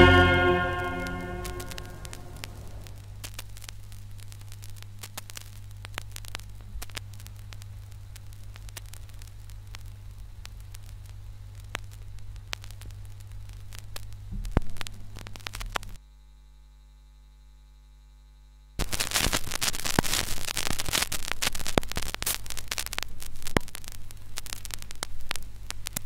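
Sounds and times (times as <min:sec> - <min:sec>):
record run-out groove hum: 0:00.0 - 0:26.0
vinyl clicks and pops: 0:18.8 - 0:26.0.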